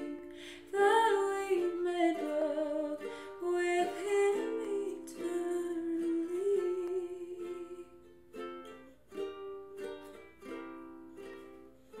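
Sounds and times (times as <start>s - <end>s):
woman singing: 0.0s - 8.1s
ukulele strumming chords: 0.0s - 12.0s.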